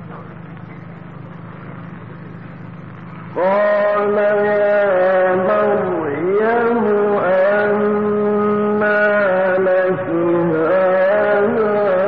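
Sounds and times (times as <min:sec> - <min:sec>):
low background hum: 0:00.0 - 0:12.0
man reciting melodically: 0:03.4 - 0:12.0.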